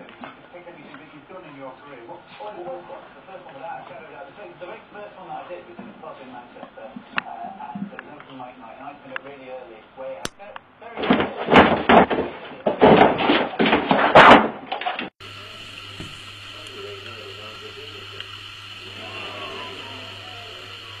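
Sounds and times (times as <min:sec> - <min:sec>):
dog thrashing in plastic bed: 0:11.0 - 0:15.1
steady hiss with low hum: 0:15.2 - 0:21.0.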